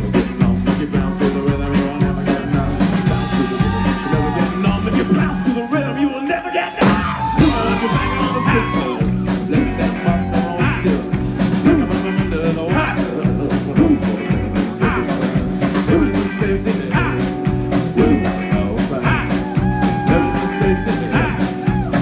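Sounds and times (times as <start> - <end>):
bass guitar: 0.0 - 22.0
drums: 0.0 - 22.0
man singing: 0.0 - 22.0.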